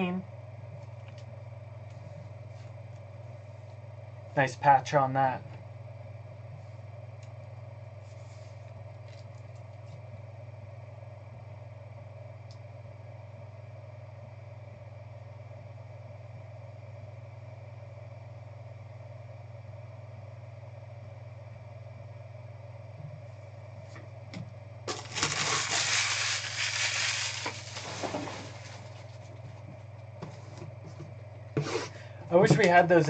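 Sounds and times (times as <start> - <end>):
low electrical hum: 0.0 - 33.0
packaging crinkling: 24.9 - 29.3.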